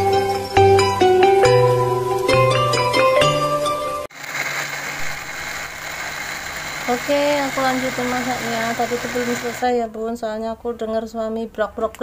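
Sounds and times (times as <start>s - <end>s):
electric blender grinding: 4.1s - 9.7s
person speaking: 6.8s - 9.8s.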